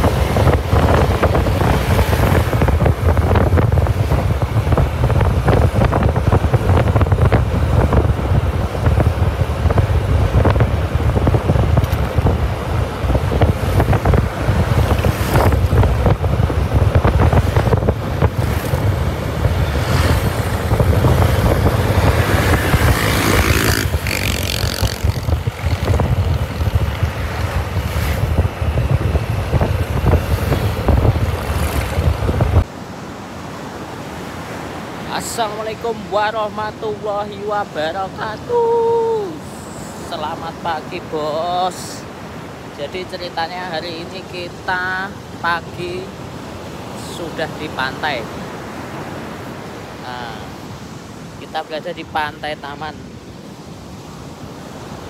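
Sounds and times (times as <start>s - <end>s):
wind buffeting microphone: 0.0s - 32.7s
surf breaking on beach: 0.0s - 32.8s
scooter engine and road noise: 0.0s - 42.8s.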